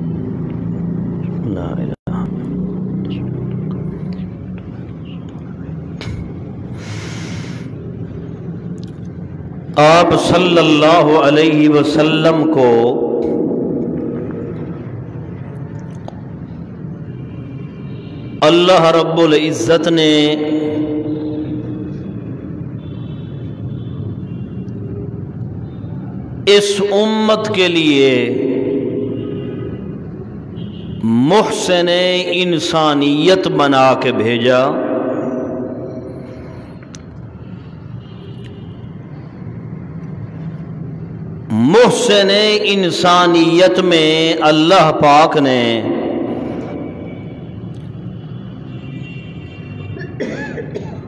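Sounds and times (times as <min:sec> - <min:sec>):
man speaking over loudspeaker: 0:01.3 - 0:03.4, 0:09.6 - 0:14.7, 0:18.3 - 0:22.0, 0:26.4 - 0:30.1, 0:31.0 - 0:36.5, 0:41.4 - 0:47.4
steady low rumble: 0:13.1 - 0:15.6.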